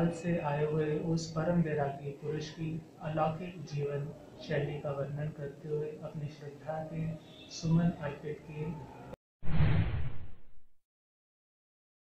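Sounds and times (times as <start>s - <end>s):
whoosh sound effect: 9.4s - 10.6s.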